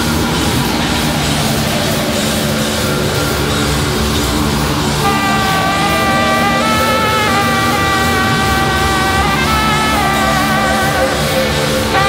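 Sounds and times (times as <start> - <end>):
rock band playing chord: 4.1 - 12.0.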